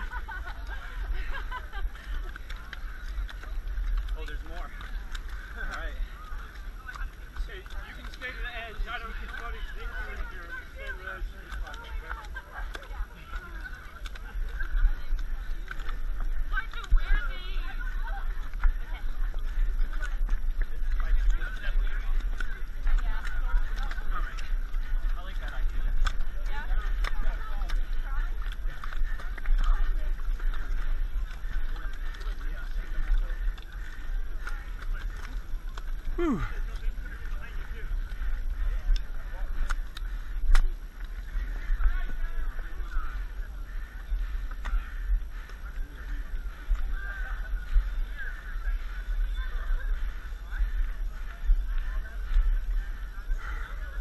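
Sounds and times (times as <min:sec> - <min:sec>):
camera jostling rumble: 0:00.0 - 0:54.0
distant voices: 0:00.0 - 0:54.0
mud squelching: 0:00.0 - 0:54.0.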